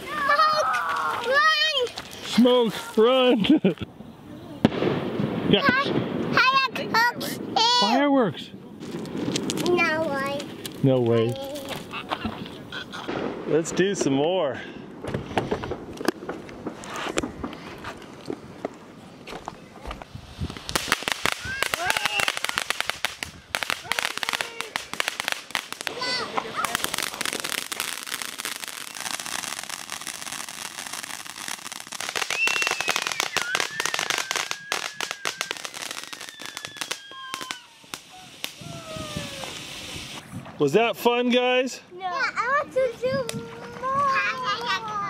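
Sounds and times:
fountain fireworks spraying sparks: 0.0s - 3.7s, 8.8s - 19.0s, 19.8s - 40.4s
fireworks crackling: 0.0s - 3.9s, 4.5s - 8.1s, 8.7s - 40.4s
people talking: 40.6s - 45.0s.

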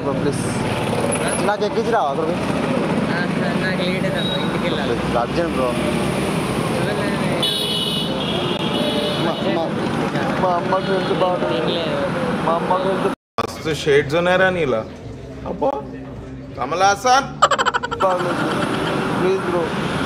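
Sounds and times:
street traffic engines: 0.0s - 20.0s
vehicle horn: 7.4s - 9.6s
men's voices: 12.3s - 19.8s.

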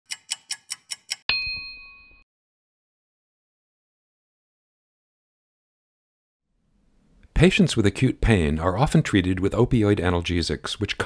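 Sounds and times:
clock ticks: 0.1s - 1.3s
bright bell-like ding: 1.3s - 2.2s.

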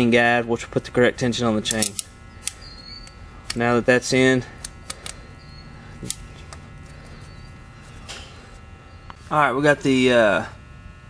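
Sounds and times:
low electrical hum: 0.0s - 11.0s
sharp metallic click: 1.7s - 3.6s.

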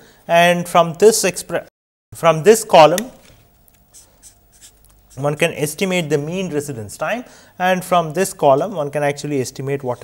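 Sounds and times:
marker writing on paper: 3.9s - 5.4s.

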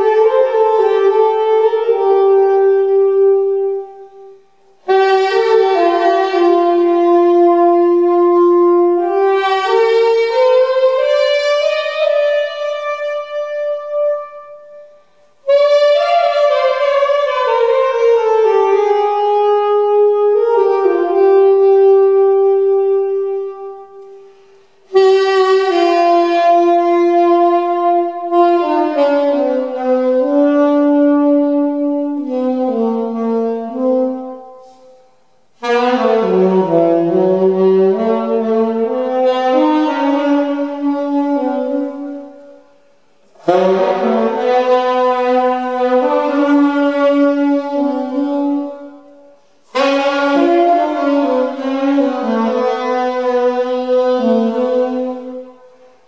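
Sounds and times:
saxophone playing slow jazz: 0.0s - 56.0s.

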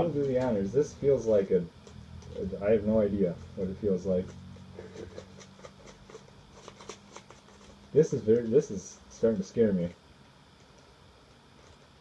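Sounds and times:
paper packaging rustling: 4.8s - 8.2s.

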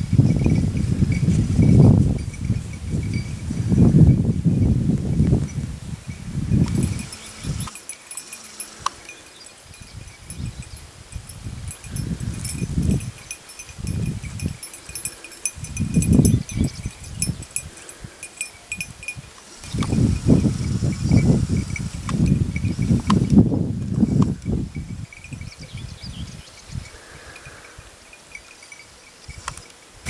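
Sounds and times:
small bells jingling: 0.0s - 4.2s, 5.4s - 23.2s, 24.0s - 26.2s, 26.8s - 30.0s
wind buffeting microphone: 0.0s - 28.5s.

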